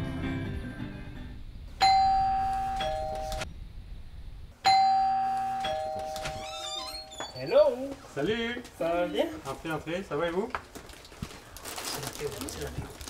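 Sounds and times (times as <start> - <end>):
doorbell ding-dong chime: 1.8 - 3.4, 4.6 - 7.2.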